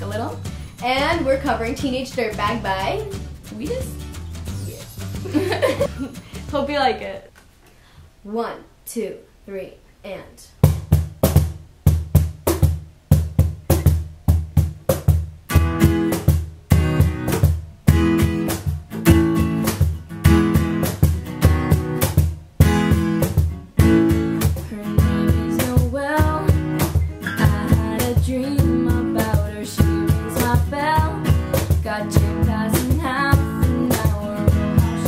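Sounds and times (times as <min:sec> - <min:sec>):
acoustic guitar strumming: 0:00.0 - 0:07.1, 0:10.7 - 0:35.0
cajon beat: 0:00.0 - 0:07.5, 0:10.6 - 0:35.0.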